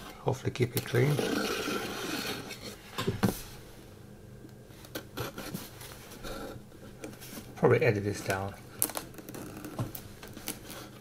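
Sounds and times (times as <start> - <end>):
plastic wrap rustling: 6.9 - 11.0.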